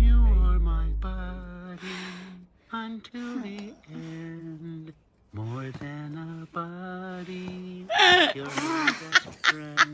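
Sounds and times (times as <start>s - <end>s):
bass note: 0.0s - 1.5s
breathy gasp: 1.8s - 2.4s.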